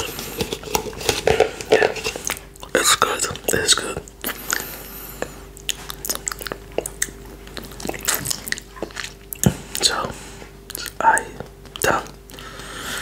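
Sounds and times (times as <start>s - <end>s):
lip smacks and clicks: 5.6s - 9.9s
wet mouth licking sounds: 5.6s - 9.9s.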